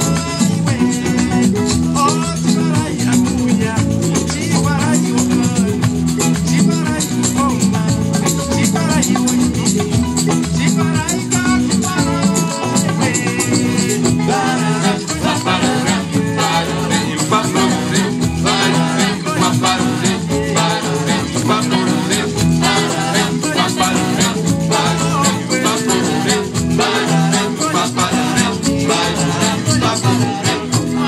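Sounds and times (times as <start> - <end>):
live band playing jazz: 0.0 - 31.0
shaken rattle: 0.0 - 31.0
person singing: 10.6 - 31.0.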